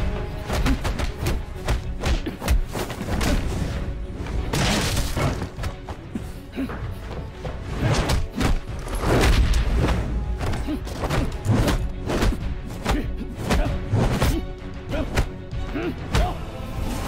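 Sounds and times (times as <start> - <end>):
dramatic score music: 0.0 - 17.0.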